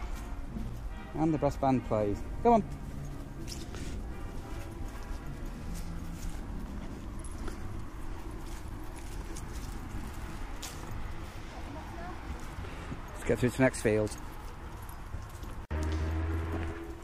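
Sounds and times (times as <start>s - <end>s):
faint brass band music: 0.0s - 8.8s.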